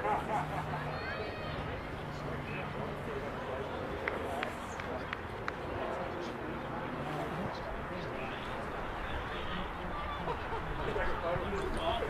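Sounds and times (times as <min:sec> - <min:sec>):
faint distant voices: 0:00.0 - 0:12.0
outdoor background noise: 0:00.0 - 0:12.0.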